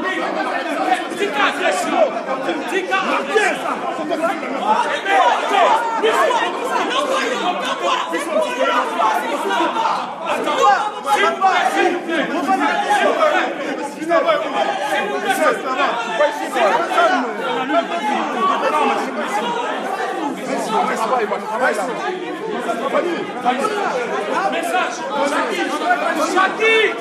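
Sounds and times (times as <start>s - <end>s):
crowd chatter: 0.0s - 27.0s.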